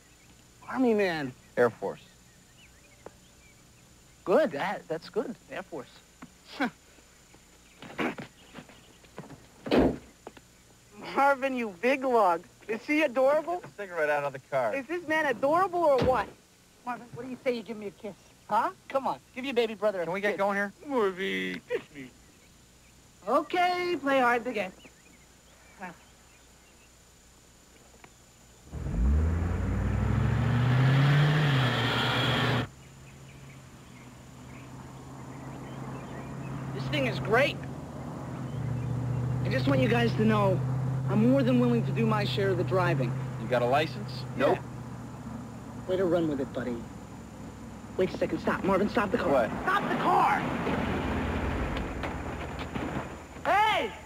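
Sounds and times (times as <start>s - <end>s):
faint steady engine hum: 0.0s - 53.4s
car engine accelerating past: 28.7s - 32.7s
car engine and road rumble: 28.7s - 53.4s.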